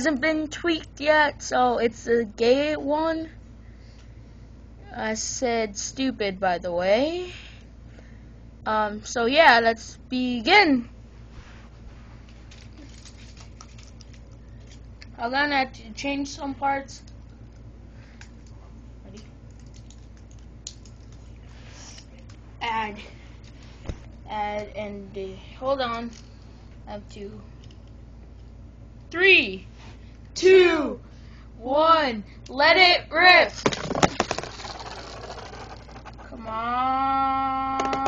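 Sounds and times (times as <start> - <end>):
spinning tops rattling and scraping: 12.2 - 14.8, 33.6 - 36.4
plastic bricks clicking and rattling: 33.6 - 36.3
spinning tops clacking on plastic: 33.6 - 36.3.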